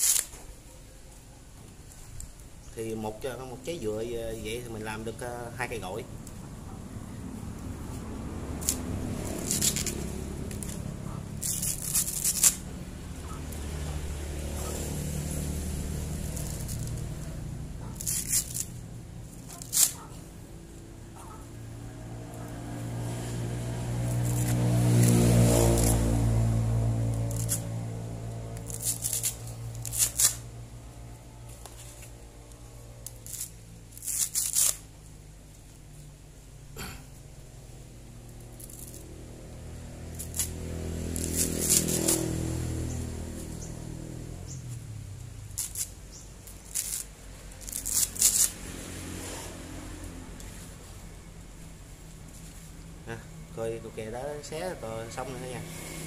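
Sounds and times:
coconut husk ripping: 0.0 - 36.1, 37.7 - 53.2
low droning hum: 6.0 - 48.0.

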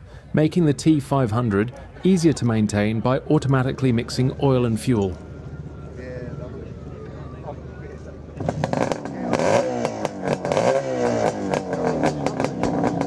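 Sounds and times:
motorcycle engine starting and revving: 3.6 - 13.0.

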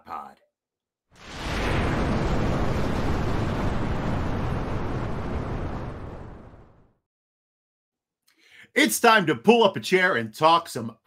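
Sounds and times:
deep rumble: 1.2 - 7.0
fire burst rush: 1.2 - 7.0.

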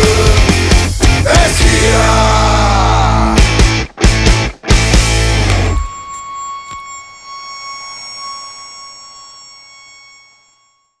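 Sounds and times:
heavy rock final chord: 0.0 - 5.8
high guitar feedback tone: 2.8 - 11.0.

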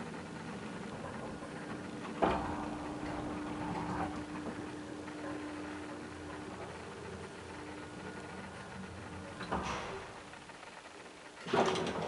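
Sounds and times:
elevator drive hum: 0.0 - 12.0
elevator clunk: 0.5 - 10.4, 11.4 - 12.0.

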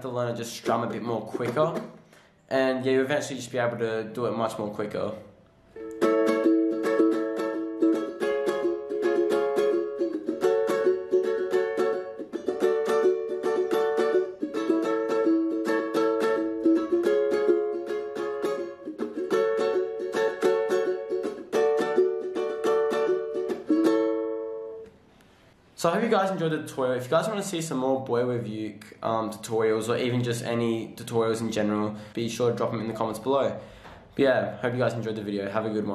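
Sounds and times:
ukulele strumming chords: 0.5 - 2.2, 5.7 - 25.0.

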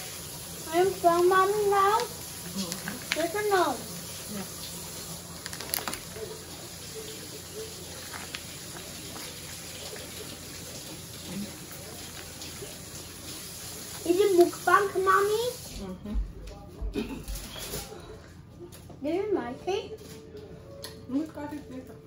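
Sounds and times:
voice: 0.7 - 4.5, 14.0 - 17.3.

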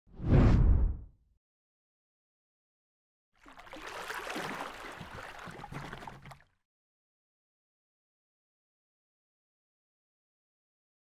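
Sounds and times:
deep whoosh: 0.1 - 1.1.

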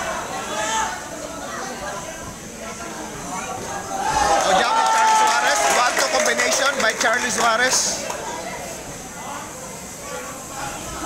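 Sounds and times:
crowd of spectators: 0.0 - 11.0.

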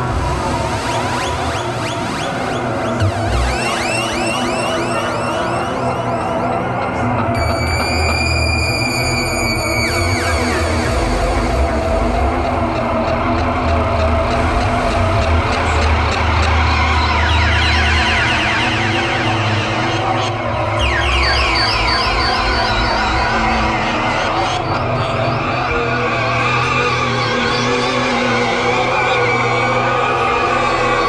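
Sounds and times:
synthesizer noise drone: 0.0 - 31.0
high synth tones sliding down: 2.8 - 6.3.

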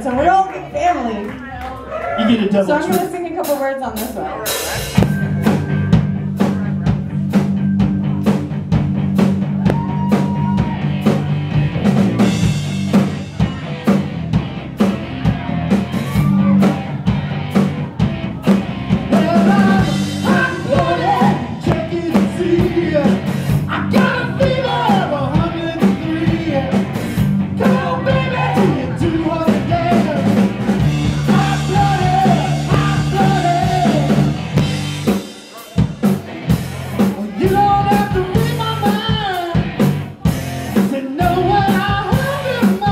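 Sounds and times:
bass and electric guitar: 0.0 - 42.9
drum-kit beat: 2.4 - 42.9
lead vocals: 17.8 - 36.2, 36.9 - 42.9.

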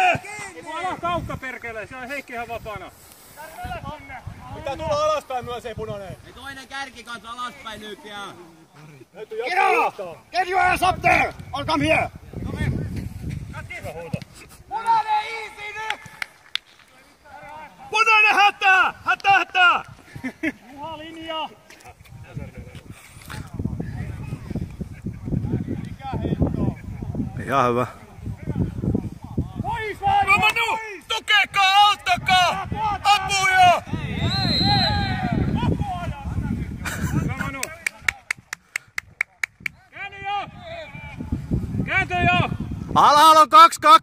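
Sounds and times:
man shouting: 9.4 - 11.3, 17.9 - 19.8, 29.6 - 33.9, 41.9 - 44.0.

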